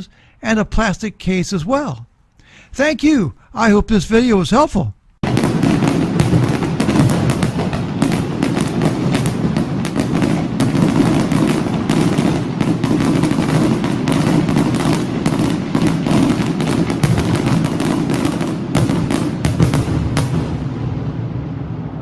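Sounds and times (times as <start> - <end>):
fireworks cracking and popping: 5.2 - 21.1.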